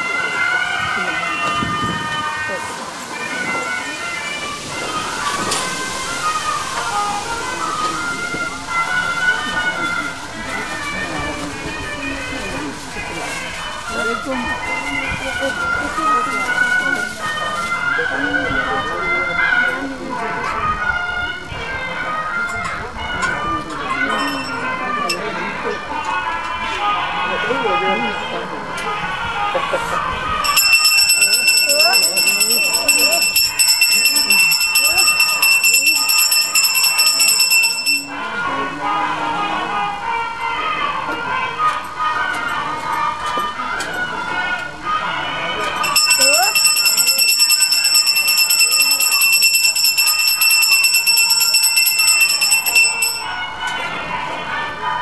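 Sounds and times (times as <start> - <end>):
people's voices overlapping: 0.0 - 55.0
metal hand bell ringing rapidly: 24.1 - 24.6, 30.4 - 38.1, 45.8 - 53.4
held high tones: 30.4 - 38.2, 45.8 - 53.5.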